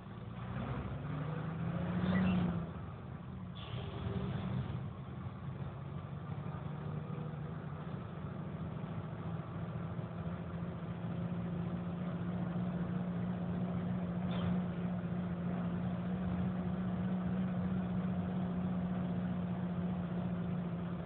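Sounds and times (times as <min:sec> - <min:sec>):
road noise: 0:00.0 - 0:21.0
vehicle engine drone: 0:00.0 - 0:21.0.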